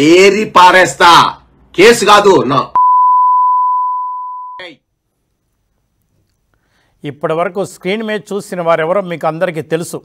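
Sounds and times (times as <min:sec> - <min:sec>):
censor bleep: 0:02.8 - 0:04.7.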